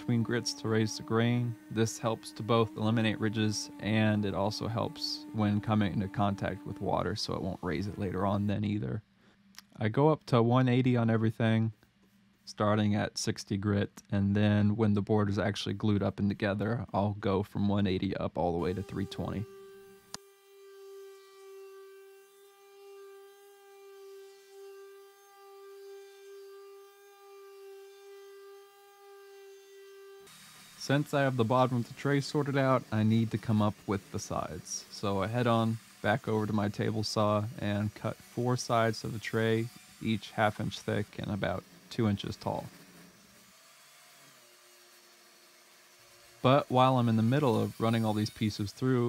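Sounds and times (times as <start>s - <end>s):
palm sander whining: 0.0s - 8.9s, 18.6s - 49.0s.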